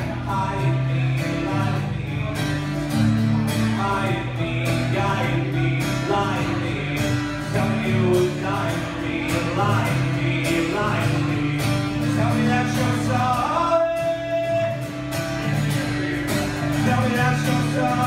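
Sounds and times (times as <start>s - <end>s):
man singing: 0.0s - 18.0s
strummed acoustic guitar: 0.0s - 18.0s.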